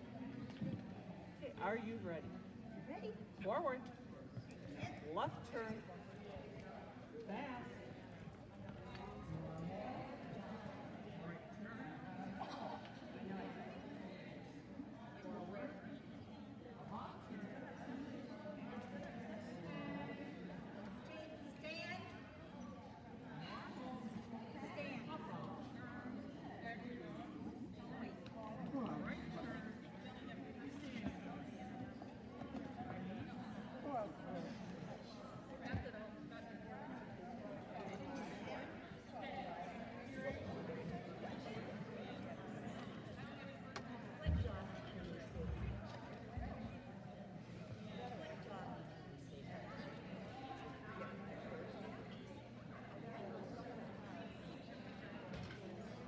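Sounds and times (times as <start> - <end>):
faint indistinct voices: 0.0 - 56.0.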